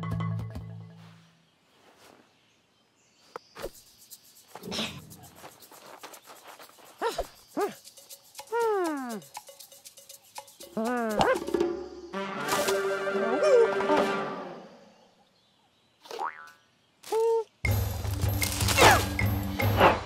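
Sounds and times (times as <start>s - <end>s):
cartoon music: 8.4s - 14.5s.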